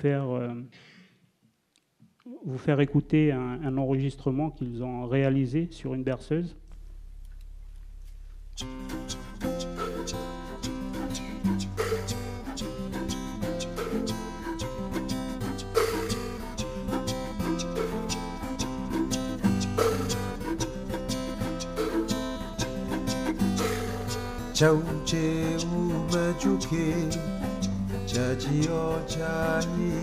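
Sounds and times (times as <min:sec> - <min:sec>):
lively music with steady beat: 0:08.6 - 0:30.0.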